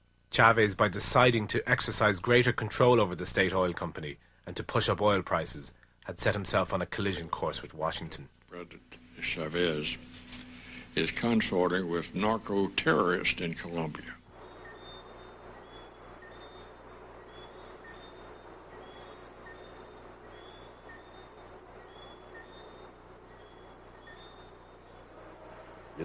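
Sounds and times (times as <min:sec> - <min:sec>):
crickets chirping: 0:04.7 - 0:26.0
fainter chirp: 0:09.2 - 0:26.0.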